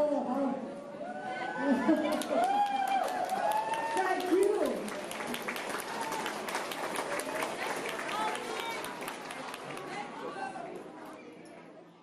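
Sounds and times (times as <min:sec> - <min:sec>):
audience clapping: 0:01.9 - 0:10.2.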